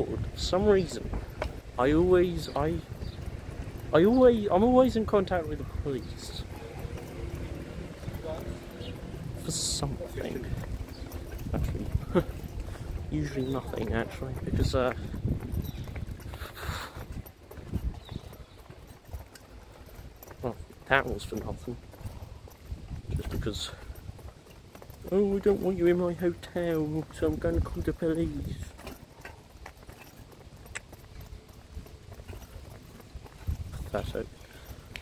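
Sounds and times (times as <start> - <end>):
steady low rumble: 0.0 - 25.2
clopping knocks on hard street: 0.8 - 1.8.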